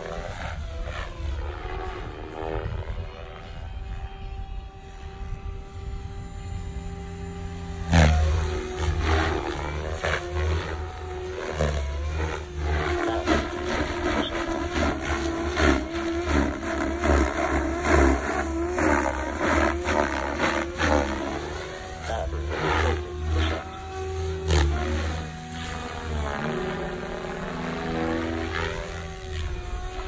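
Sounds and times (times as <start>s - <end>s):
rc helicopter rotor and motor: 0.0s - 30.0s.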